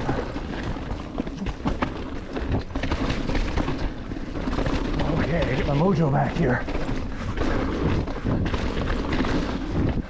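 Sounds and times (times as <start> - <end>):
bike rattling over roots: 0.0 - 10.0.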